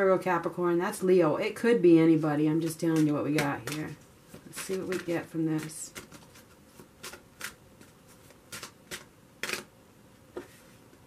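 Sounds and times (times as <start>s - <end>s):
cards being shuffled: 2.8s - 9.7s.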